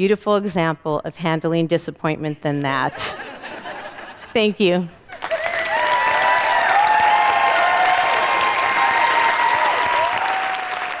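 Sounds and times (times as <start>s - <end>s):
audience applauding: 5.1s - 11.0s
cheering voices: 5.2s - 11.0s.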